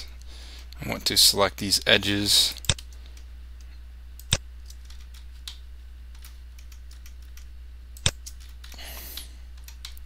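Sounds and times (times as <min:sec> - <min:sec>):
steady low hum: 0:00.0 - 0:10.0
computer mouse click: 0:06.2 - 0:10.0.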